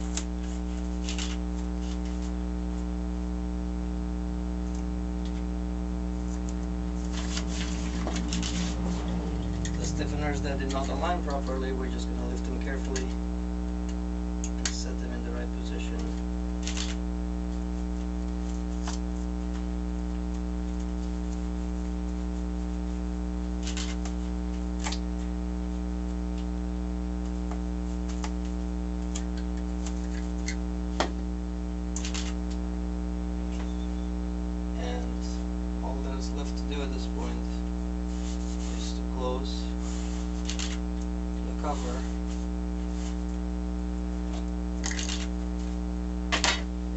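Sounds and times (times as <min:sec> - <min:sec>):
electrical mains hum: 0:00.0 - 0:46.9.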